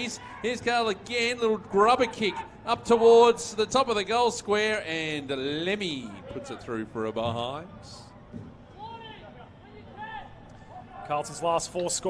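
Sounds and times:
faint stadium ambience: 0.0s - 12.0s.

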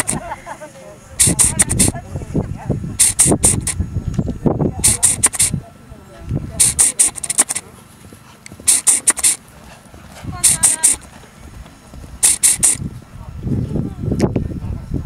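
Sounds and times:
short sharp hissing bursts: 0.0s - 0.2s, 1.2s - 2.0s, 3.0s - 3.8s, 4.8s - 5.6s, 6.6s - 7.7s, 8.6s - 9.4s, 10.4s - 11.0s, 12.2s - 12.8s
low indistinct voices: 0.0s - 15.0s.

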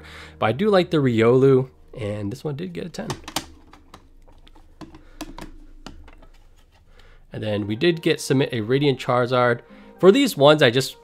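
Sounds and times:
plastic cases clicking together: 3.0s - 7.1s.

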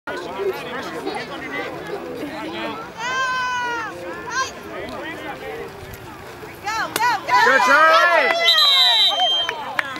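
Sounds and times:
people talking over one another: 0.1s - 9.9s.

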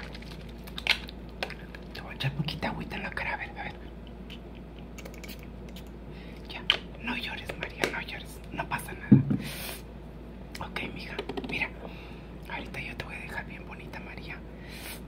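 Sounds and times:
bottles knocking on a table: 9.1s - 9.4s.

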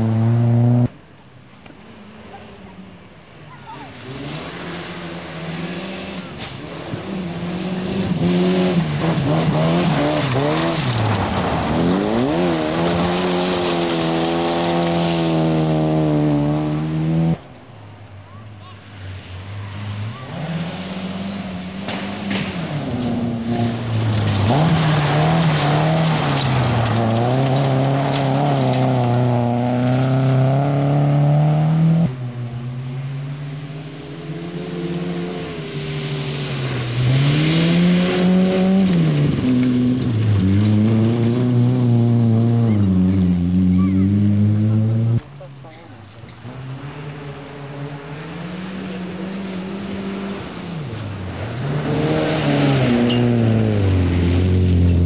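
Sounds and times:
rally car engine revving: 0.0s - 1.0s, 3.9s - 17.5s, 18.9s - 55.0s.

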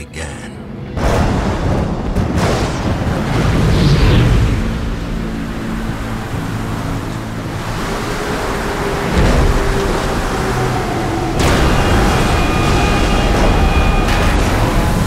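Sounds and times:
deep rumble: 0.6s - 15.0s
heavy waves and spray: 1.1s - 15.0s.

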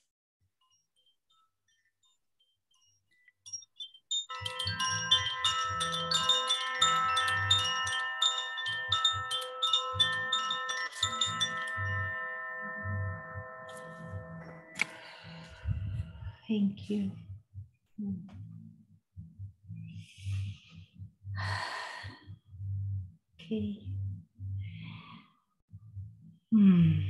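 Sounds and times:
hand chime tinkling: 0.6s - 15.9s.

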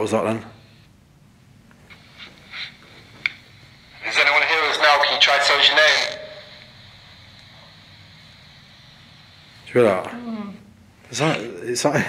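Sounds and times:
voice through small speaker: 3.9s - 10.6s.

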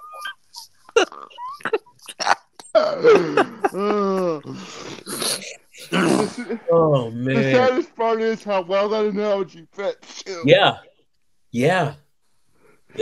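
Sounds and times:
people laughing hard: 0.9s - 4.7s.

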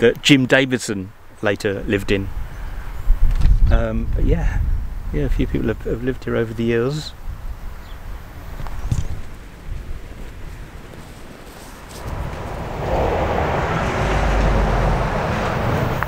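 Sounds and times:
wind rumbling on microphone: 1.8s - 16.0s
broad rushing noise: 10.6s - 16.0s.

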